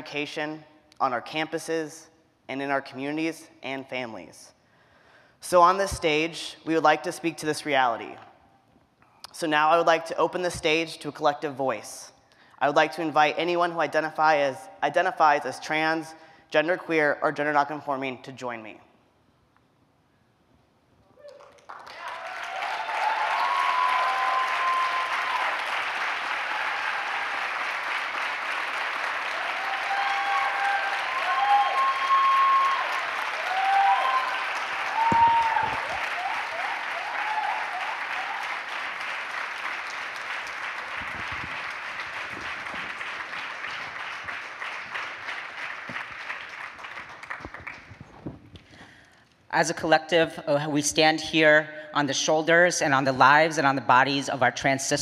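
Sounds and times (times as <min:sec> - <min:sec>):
cheers and whoops: 0:21.2 - 0:27.4, 0:29.3 - 0:38.6
audience applauding: 0:21.3 - 0:48.1.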